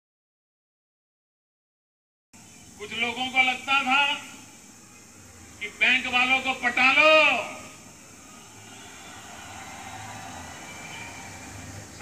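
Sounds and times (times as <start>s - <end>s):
steady hiss: 2.4s - 12.0s.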